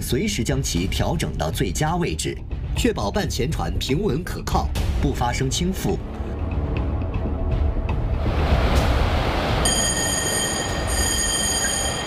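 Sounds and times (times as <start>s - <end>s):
music: 0.0s - 10.1s
heavy low rumble with rushing: 6.0s - 9.6s.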